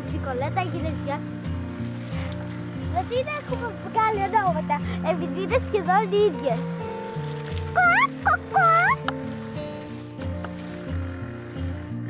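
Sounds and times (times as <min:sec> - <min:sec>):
hen calling: 0:07.7 - 0:09.1.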